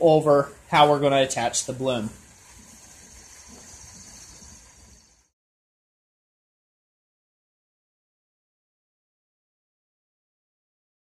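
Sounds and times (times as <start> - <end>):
faint background hiss: 0.0 - 5.3.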